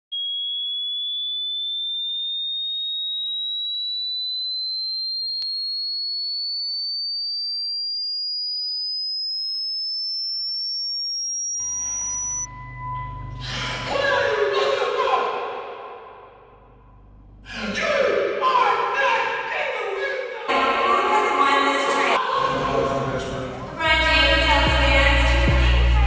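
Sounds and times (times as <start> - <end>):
rising electronic tone: 0.2 - 13.5.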